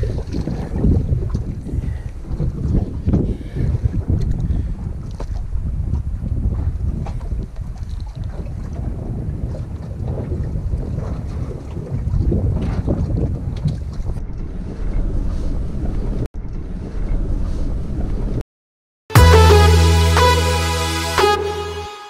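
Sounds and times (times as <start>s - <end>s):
wind buffeting microphone: 0.0s - 18.4s.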